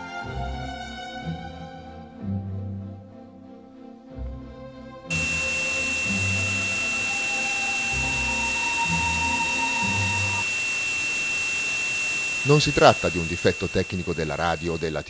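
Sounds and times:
faint lower tone: 0:05.1 - 0:15.0
static-like hiss with whistle: 0:05.1 - 0:15.0.

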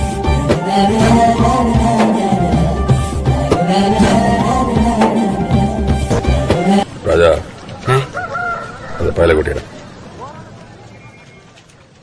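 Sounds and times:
rooster crowing: 0:08.0 - 0:09.2.

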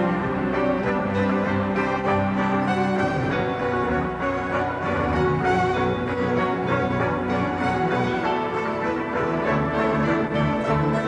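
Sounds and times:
sustained violin lines: 0:00.0 - 0:11.0.

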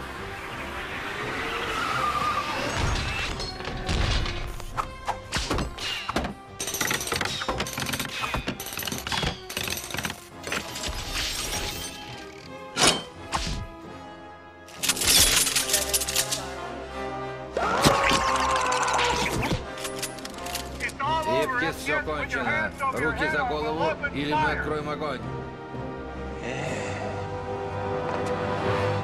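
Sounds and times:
dramatic music: 0:00.0 - 0:29.0.

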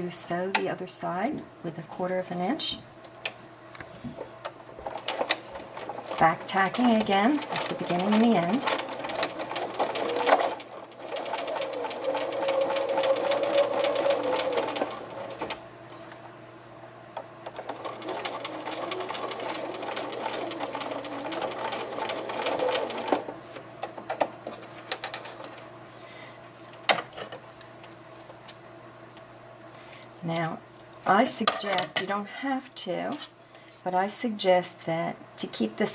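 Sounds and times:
sewing machine stitching: 0:04.8 - 0:15.6, 0:17.5 - 0:23.3.

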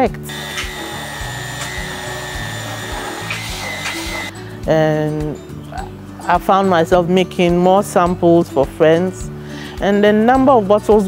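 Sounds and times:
background music with beat: 0:00.0 - 0:11.0
immersion blender motor running: 0:00.3 - 0:04.3.

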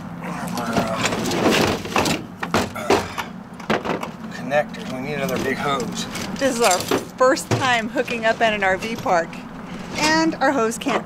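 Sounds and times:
sharp knocks: 0:00.8 - 0:04.2
tools clattering in metal box: 0:05.2 - 0:09.1.

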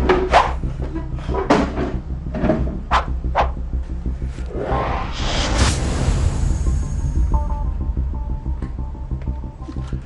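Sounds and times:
low pulsing bass: 0:00.0 - 0:10.0.

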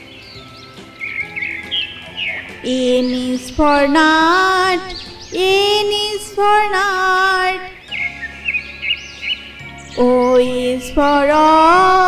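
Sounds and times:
arching bird whistles: 0:00.0 - 0:06.4, 0:07.7 - 0:10.4
bird chirps: 0:00.0 - 0:12.0
soft instrumental music: 0:00.0 - 0:12.0.

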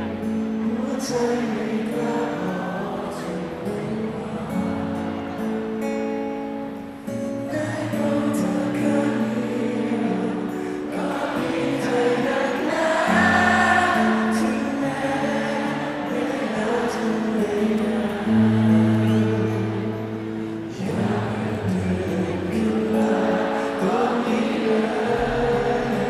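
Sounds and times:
person singing: 0:00.0 - 0:06.0, 0:07.2 - 0:26.0.

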